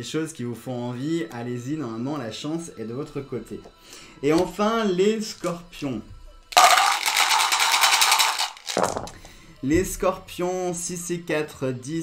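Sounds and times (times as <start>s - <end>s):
dice rattling in a cup: 6.5s - 9.3s
dice tipped into a tray: 6.6s - 9.3s.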